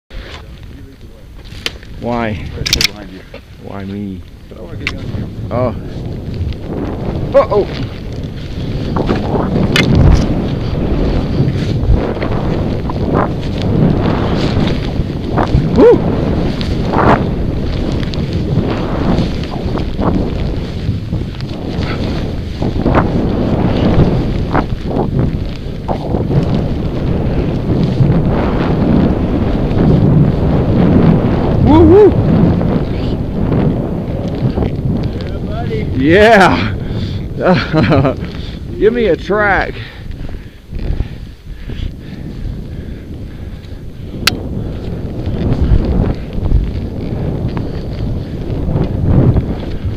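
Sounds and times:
skis through powder snow: 0.1s - 49.9s
wind over microphone: 0.1s - 49.9s.

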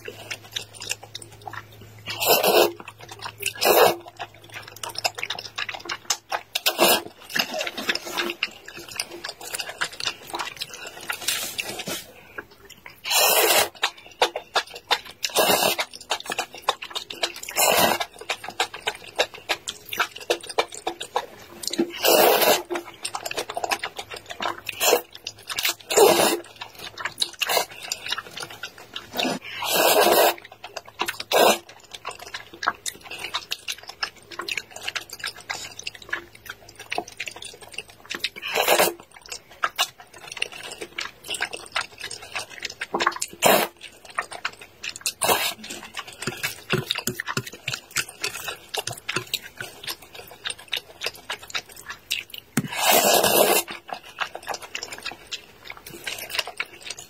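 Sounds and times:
noodles being slurped: 0.0s - 57.0s
wet chewing clicks and smacks: 0.0s - 57.0s.

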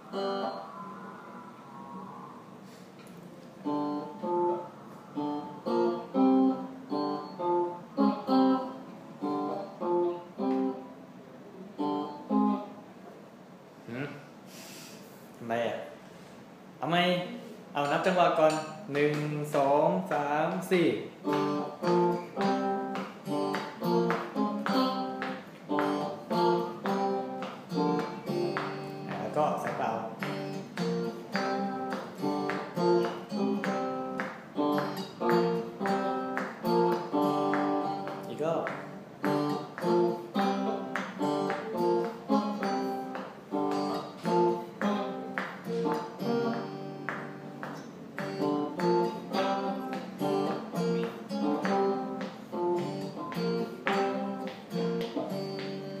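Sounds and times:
clean electric guitar strumming chords: 0.0s - 12.9s, 17.4s - 56.0s.

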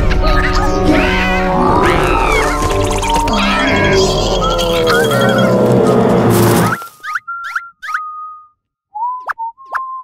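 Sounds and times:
background music: 0.0s - 6.9s
whistle-like cartoon tones: 6.7s - 10.0s.

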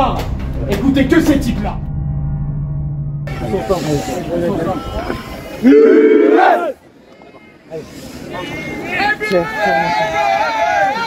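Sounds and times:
men talking and shouting: 0.0s - 2.0s, 3.3s - 11.0s
low steady hum: 0.0s - 5.7s.

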